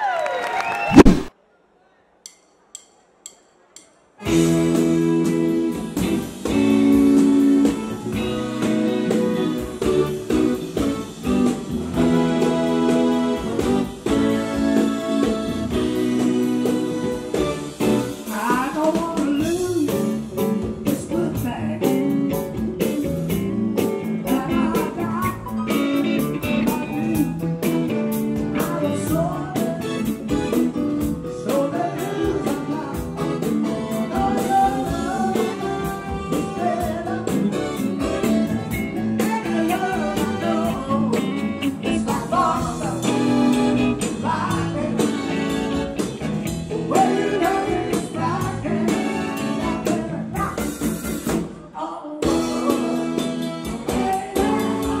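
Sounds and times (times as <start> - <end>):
electric guitar and drums: 1.0 - 1.3, 4.2 - 55.0
electric keyboard chords: 4.2 - 18.3, 19.5 - 51.5
man singing: 18.2 - 22.6, 24.0 - 45.8, 46.7 - 50.6, 51.7 - 55.0.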